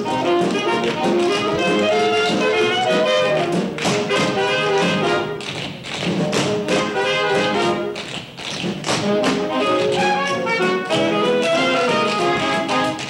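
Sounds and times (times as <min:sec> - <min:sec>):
band playing brassy swing tune: 0:00.0 - 0:08.1, 0:08.8 - 0:13.0
tap dancing feet on stage: 0:00.0 - 0:13.0.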